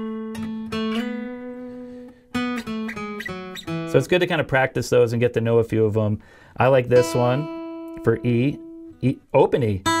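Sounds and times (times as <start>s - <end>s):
acoustic guitar picked notes: 0.0s - 4.4s, 6.6s - 10.0s.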